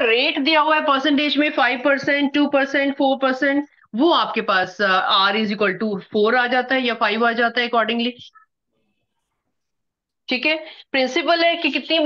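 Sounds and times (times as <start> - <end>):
woman's voice: 0.0 - 8.5, 10.3 - 12.0.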